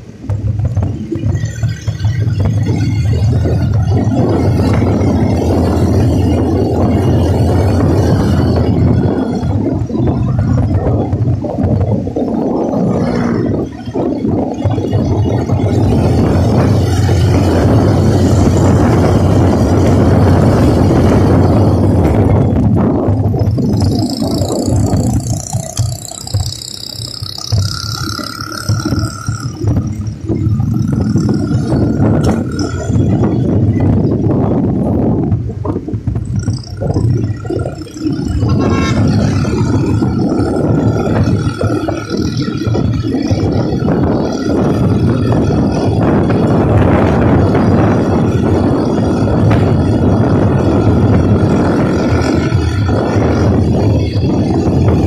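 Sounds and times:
motorcycle engine drone: 0.0s - 55.0s
wind on microphone: 0.0s - 55.0s.

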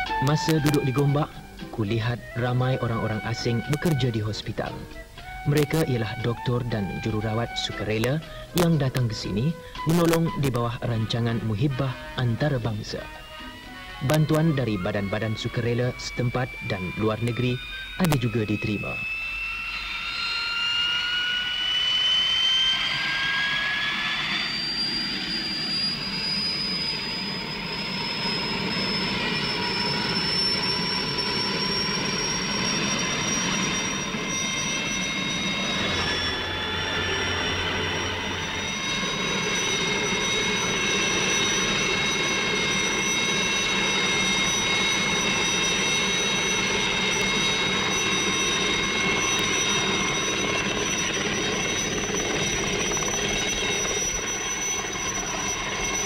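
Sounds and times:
helicopter rotor noise: 0.0s - 56.0s
helicopter turbine whine: 0.0s - 56.0s.

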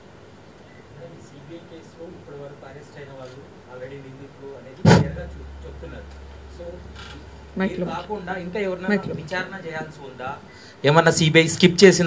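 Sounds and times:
low electrical hum: 0.0s - 12.0s
loud thump on microphone: 4.8s - 5.3s.

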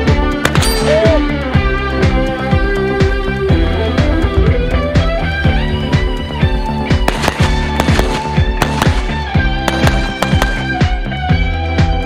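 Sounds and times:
background rock music: 0.0s - 12.0s
rapid rifle shots: 7.0s - 10.9s.

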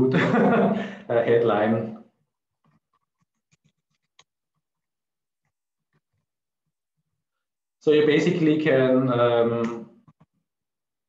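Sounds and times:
soft keyboard typing: 2.6s - 6.3s.

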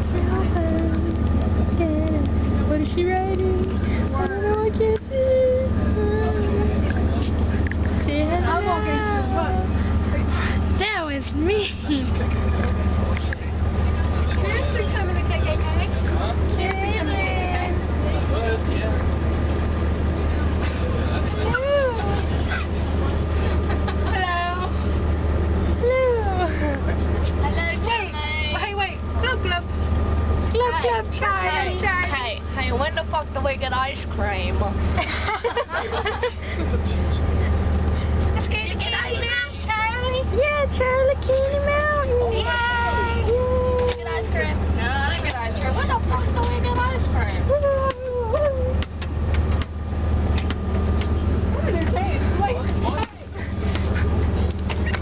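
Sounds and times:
bus engine drone: 0.0s - 55.0s
passengers talking and singing: 0.0s - 55.0s
people chattering: 1.8s - 29.7s, 30.5s - 34.9s, 35.9s - 48.8s.

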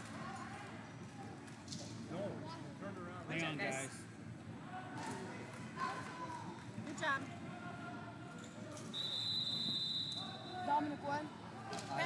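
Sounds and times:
referee's whistle blast: 9.0s - 10.5s.

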